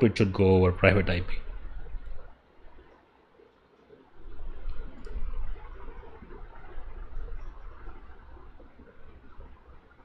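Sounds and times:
low rumble with hiss: 0.0s - 10.0s.

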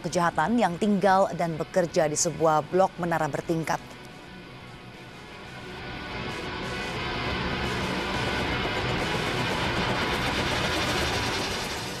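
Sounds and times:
action film score with low pulse: 0.0s - 12.0s.

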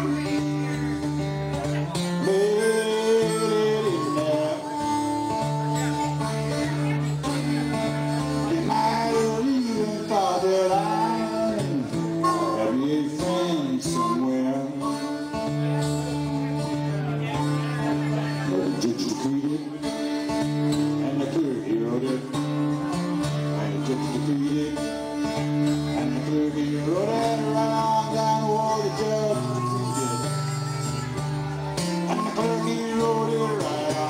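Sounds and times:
harmonica playing: 0.0s - 19.2s, 23.2s - 34.0s
acoustic guitar: 0.0s - 34.0s.

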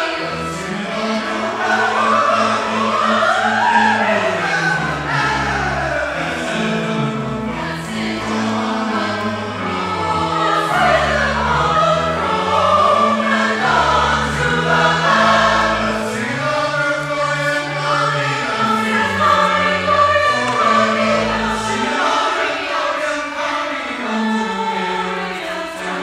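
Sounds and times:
mixed choir singing: 0.0s - 26.0s.

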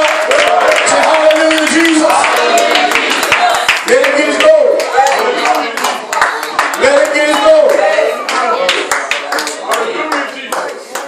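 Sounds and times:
rhythmic hand clapping: 0.0s - 11.0s
man speaking through microphone: 6.8s - 8.2s.

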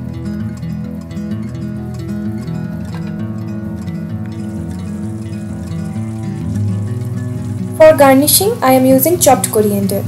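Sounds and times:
instrumental music with sustained notes: 0.0s - 10.0s.

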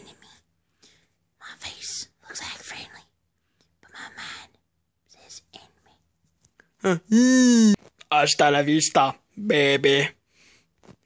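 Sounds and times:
person whispering: 1.4s - 3.1s, 3.8s - 6.0s.

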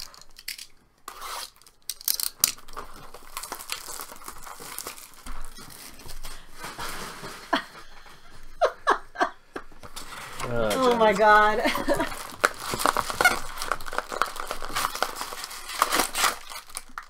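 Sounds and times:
plastic tearing crackles: 0.0s - 7.6s, 9.9s - 17.0s
plastic shrink-wrap crinkling: 0.0s - 8.0s, 9.8s - 17.0s.

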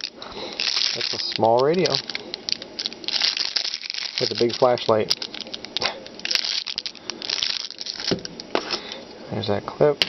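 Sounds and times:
plastic bag crinkling: 0.0s - 9.0s.

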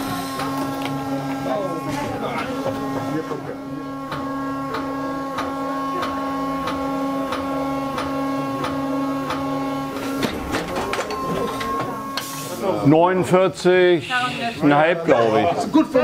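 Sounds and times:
machine humming and clicking: 0.0s - 12.6s.

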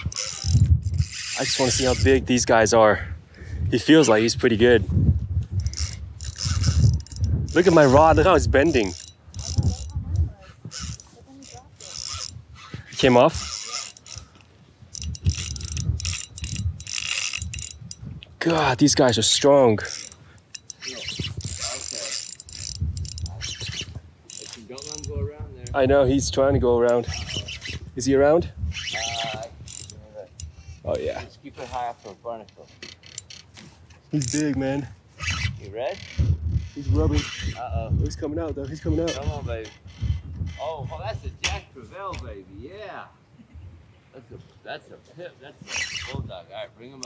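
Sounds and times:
spinning reel mechanism: 0.0s - 2.4s, 5.5s - 27.9s, 28.7s - 34.6s, 35.2s - 37.7s, 38.5s - 41.1s, 45.7s - 46.2s.

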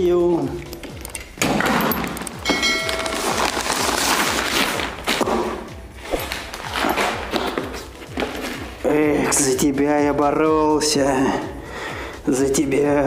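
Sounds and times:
paper and cardboard rustling: 2.6s - 9.9s.

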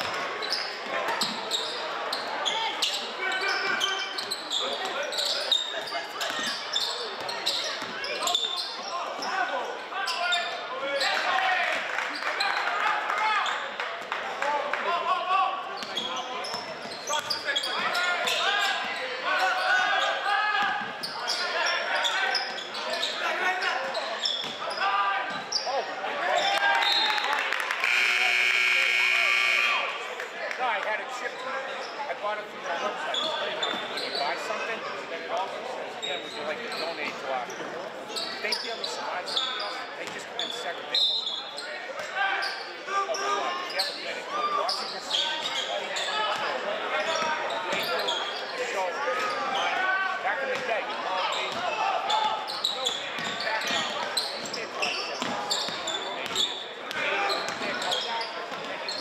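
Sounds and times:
voices echoing in gym: 0.0s - 59.0s
scoreboard horn: 27.8s - 29.9s.

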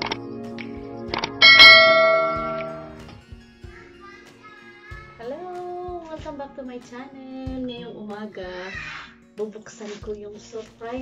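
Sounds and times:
bell chime ringing: 1.4s - 3.0s.

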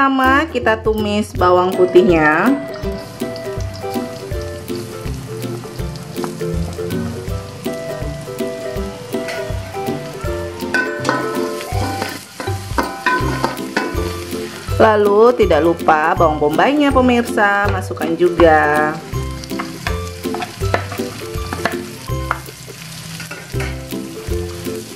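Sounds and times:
garlic sizzling in hot oil: 1.8s - 24.9s.

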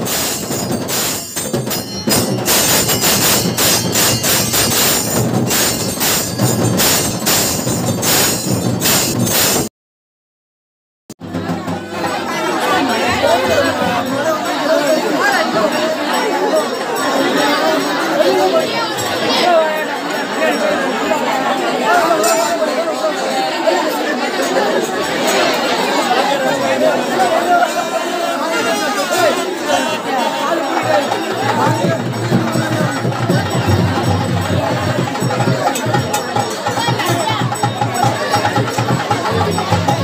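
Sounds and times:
crowd chattering: 0.0s - 9.7s, 11.2s - 40.0s
music: 0.0s - 9.7s, 11.2s - 14.4s, 31.1s - 40.0s.

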